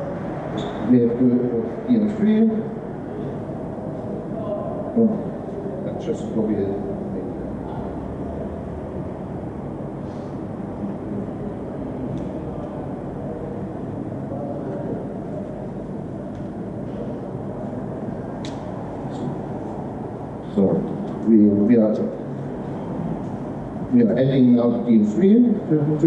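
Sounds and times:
low room rumble: 0.0 - 26.0.

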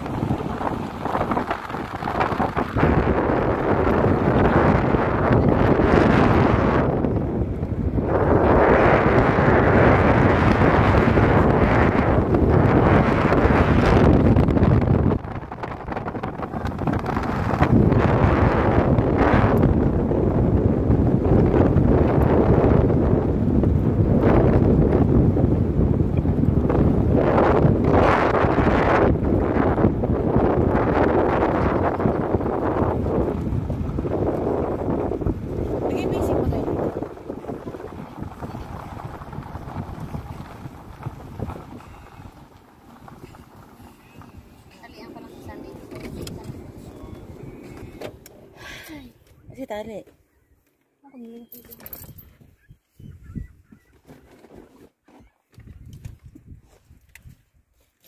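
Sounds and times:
wind rushing over microphone: 0.0 - 50.6, 51.6 - 54.5, 55.5 - 57.8
road noise: 0.0 - 52.2.

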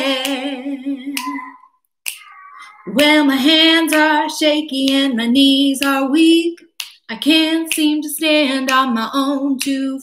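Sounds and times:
woman singing: 0.0 - 1.6, 2.8 - 10.0
finger snaps: 2.0 - 2.4.

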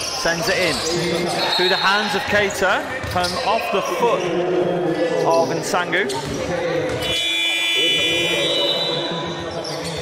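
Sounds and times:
scoreboard buzzer blast: 7.0 - 9.0.

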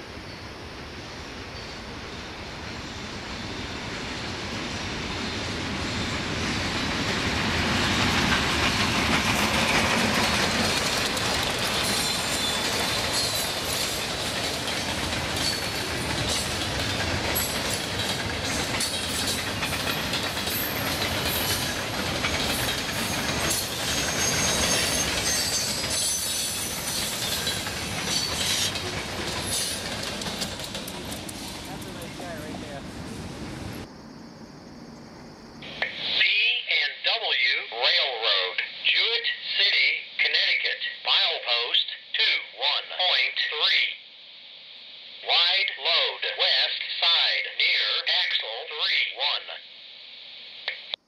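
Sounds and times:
diesel locomotives passing: 0.0 - 36.0
train wheels squealing: 0.2 - 7.1, 11.6 - 14.5, 15.4 - 30.5
wheels clicking over rail joints: 8.0 - 32.5.

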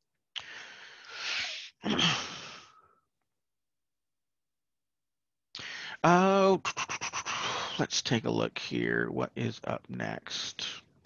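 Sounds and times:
person sighing: 0.4 - 2.8.

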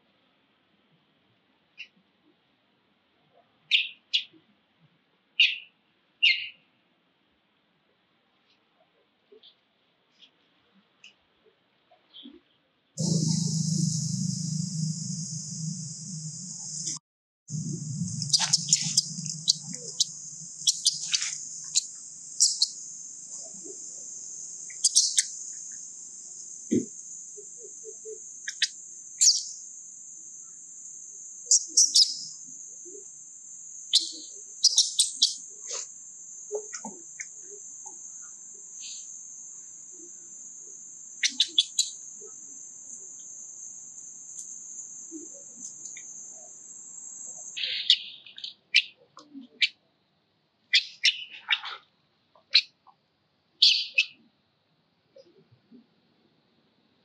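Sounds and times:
short high chirps: 13.0 - 22.9
insects droning: 13.0 - 48.6.

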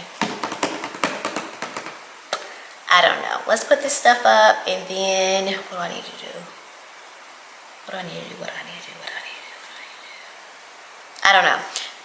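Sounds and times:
fingers tapping on cardboard box: 0.2 - 2.0.

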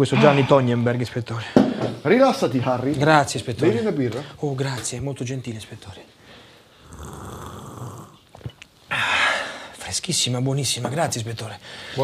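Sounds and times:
man exhaling breathy ah: 6.8 - 8.2.

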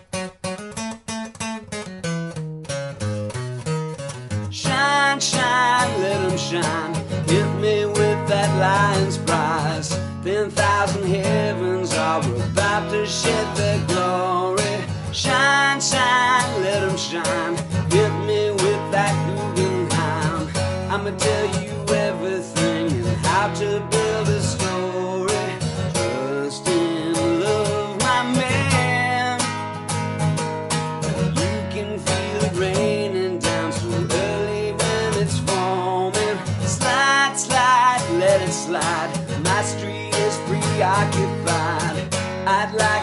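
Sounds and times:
acoustic guitar strummed: 0.0 - 43.0
man singing: 4.4 - 30.0, 31.1 - 43.0.

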